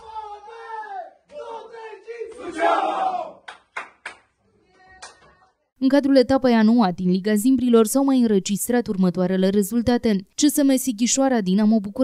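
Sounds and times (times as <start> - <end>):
men chanting and shouting: 0.0 - 3.5
sharp hand claps: 3.4 - 5.5.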